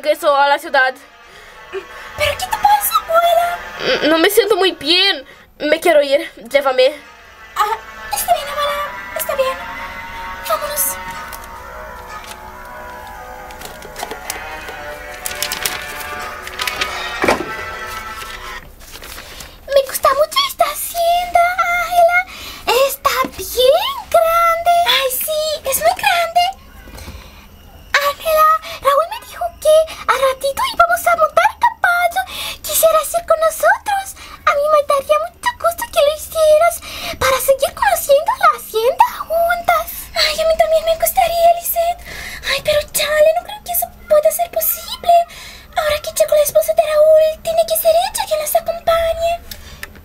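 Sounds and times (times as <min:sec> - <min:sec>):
high voice singing: 0:00.7 - 0:05.3, 0:06.4 - 0:18.4
child singing: 0:19.7 - 0:26.6, 0:28.0 - 0:49.4.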